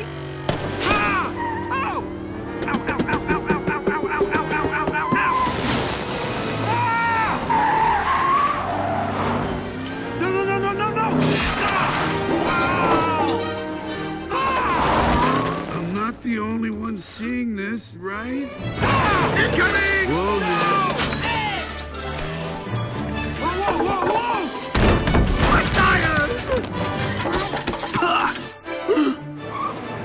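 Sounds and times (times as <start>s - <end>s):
film music: 0.0s - 30.0s.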